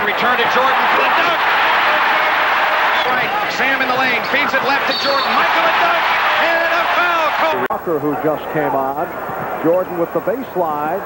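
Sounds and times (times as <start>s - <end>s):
arena crowd din: 0.0s - 11.0s
television sports commentary: 0.0s - 11.0s.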